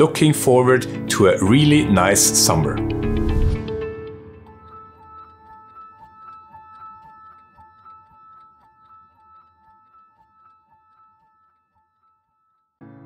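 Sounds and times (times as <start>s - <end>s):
clock-like tick-tock music: 0.0s - 11.9s.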